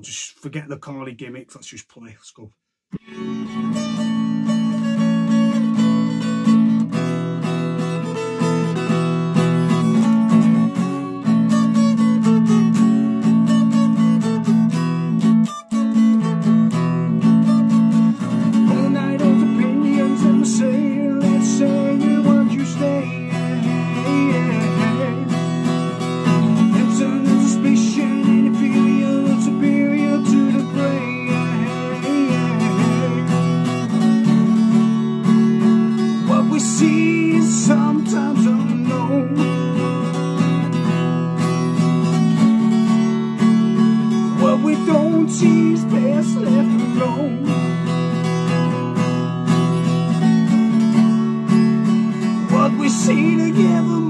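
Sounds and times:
man singing: 0.0s - 2.5s, 18.4s - 34.2s, 36.0s - 40.0s, 44.2s - 47.9s, 52.2s - 54.0s
acoustic guitar strumming: 2.9s - 54.0s.

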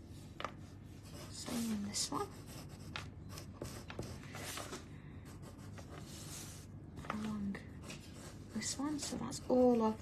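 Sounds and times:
pencil scratching on paper: 0.9s - 6.7s, 7.8s - 10.0s.

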